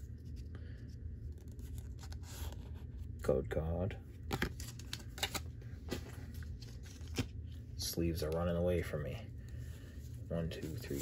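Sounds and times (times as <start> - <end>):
low steady hum: 0.0 - 11.0
cards clicking and rustling: 4.2 - 5.5.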